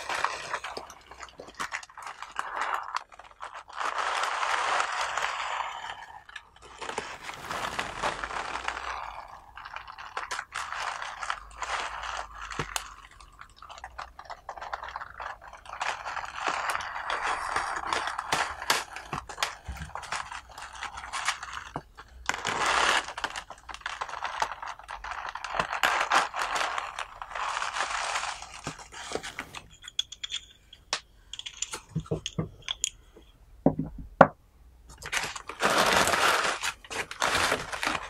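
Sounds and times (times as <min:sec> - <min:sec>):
dry tea leaves crackling: 0:00.0 - 0:29.0, 0:35.0 - 0:38.0.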